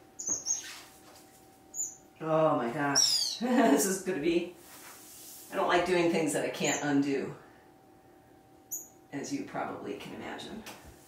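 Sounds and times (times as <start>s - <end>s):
faint steady hum: 0.0s - 11.0s
finches chirping: 0.2s - 0.8s, 1.7s - 2.1s, 2.9s - 3.4s, 6.6s - 7.0s, 8.7s - 9.0s.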